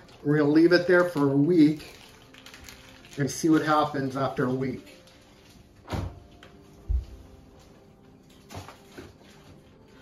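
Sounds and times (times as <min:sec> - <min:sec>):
frozen packages rustling: 0:00.0 - 0:10.0.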